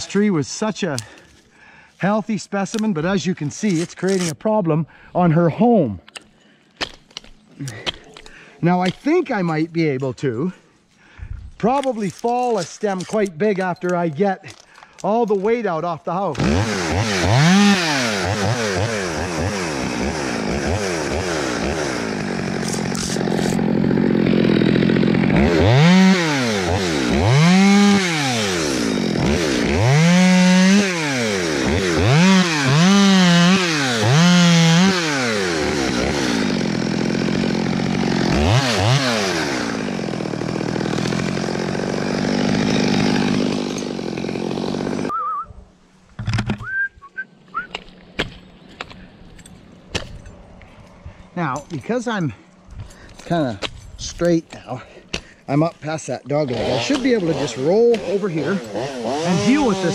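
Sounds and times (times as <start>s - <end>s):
chainsaw revving: 16.3s - 45.1s, 55.5s - 59.9s.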